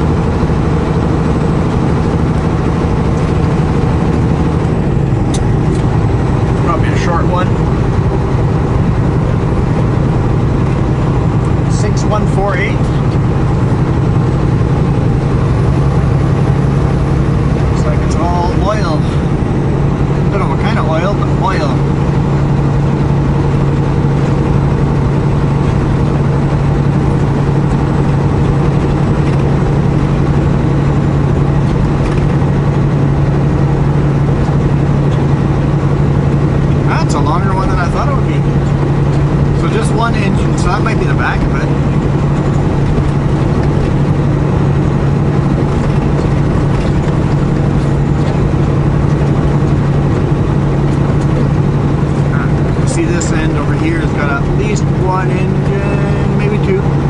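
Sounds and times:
road noise: 0.0 - 57.0
truck diesel engine droning: 0.0 - 57.0.

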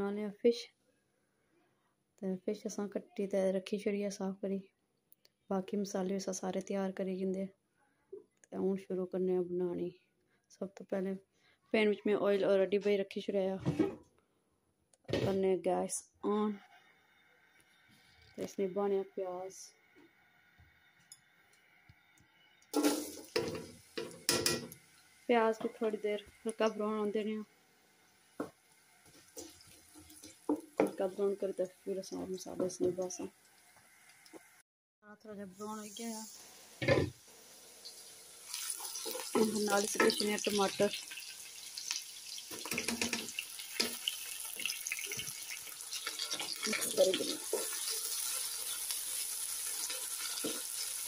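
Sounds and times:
onions sizzling in hot oil: 22.7 - 34.6, 35.6 - 51.0
clattering knocks on pan: 22.8 - 24.8, 42.6 - 44.0
onions tipped into pan: 22.8 - 24.8
wooden spatula stirring in pan: 42.5 - 48.8, 49.6 - 51.0.

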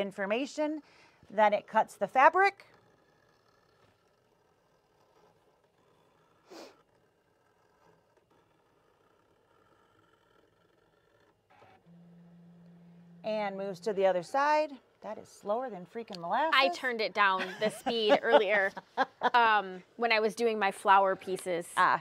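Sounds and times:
low steady hum: 7.0 - 22.0.

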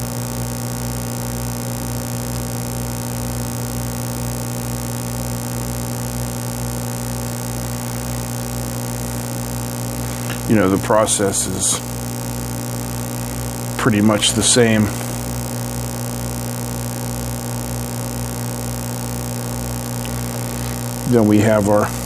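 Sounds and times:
electrical mains hum: 0.0 - 22.0.

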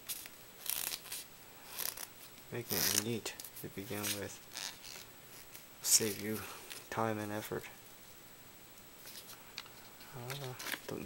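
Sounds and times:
paper rustling and crinkling: 2.7 - 6.9.

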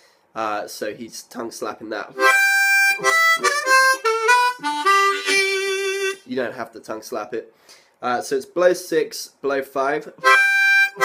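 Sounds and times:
blues harmonica: 2.1 - 6.3, 10.2 - 11.0.

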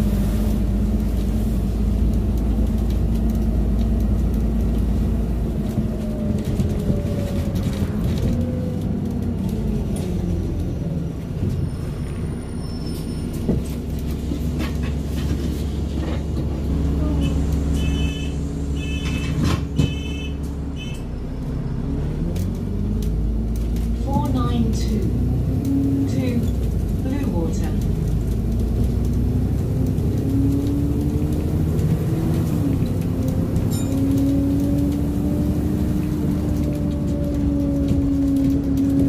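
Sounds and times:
bus engine and gearbox running: 0.0 - 39.0.

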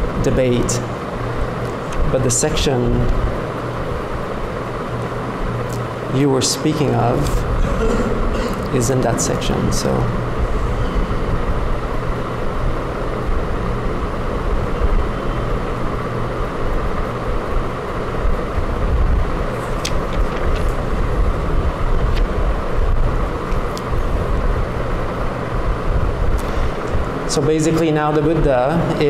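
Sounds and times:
low rumble and hiss: 0.0 - 29.0
low hum: 3.0 - 29.0.

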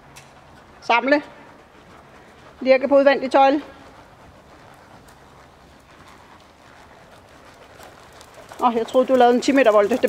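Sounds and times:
low background hum: 0.0 - 10.0
pony hoofbeats trotting: 0.0 - 10.0.

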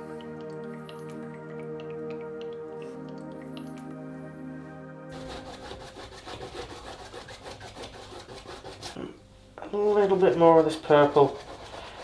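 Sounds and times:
drip-like clicks: 0.0 - 4.0
soft background music: 0.0 - 12.0
paintbrush scrubbing on canvas: 5.1 - 12.0.

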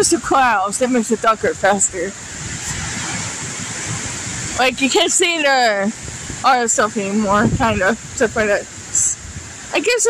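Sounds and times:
wind blowing across microphone: 0.0 - 10.0
wind rushing through trees: 0.0 - 10.0.

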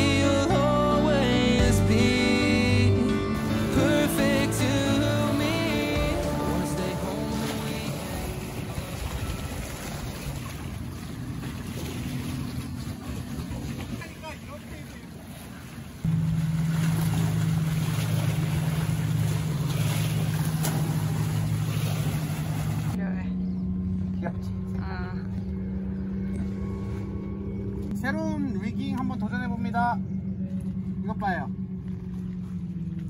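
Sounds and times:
motorboat engine hum: 0.0 - 33.0
wind: 0.0 - 33.0
water washing against rocks: 6.2 - 23.0.

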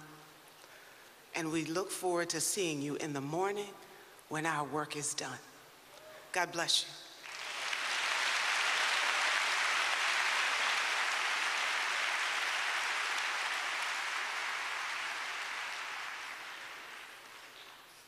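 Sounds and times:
congregation applauding: 7.2 - 18.0.

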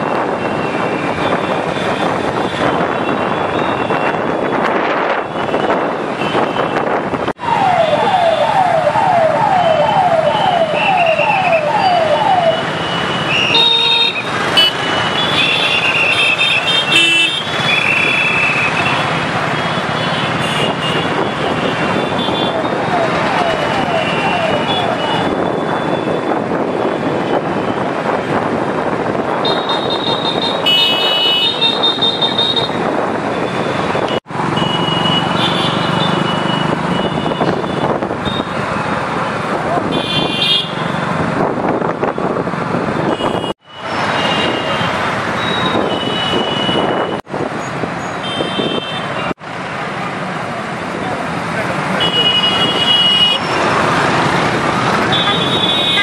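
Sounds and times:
motorcycles running in convoy: 0.0 - 56.0
siren-like electronic tone: 7.5 - 13.1
horns tooting: 9.7 - 26.3, 43.0 - 47.2, 48.2 - 49.4, 51.8 - 56.0.

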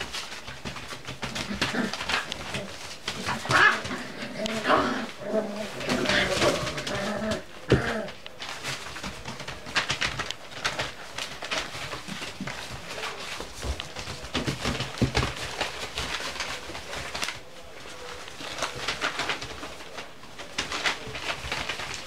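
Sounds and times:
newspaper rustling: 0.0 - 22.0.

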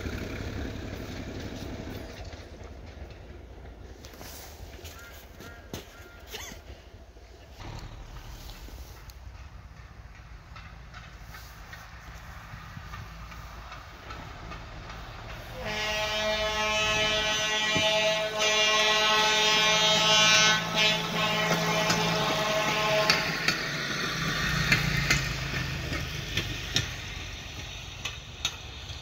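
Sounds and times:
rail vehicle engine rumbling: 0.0 - 29.0
wheels clicking over rail joints: 0.0 - 29.0
train horn blast: 14.9 - 23.8.

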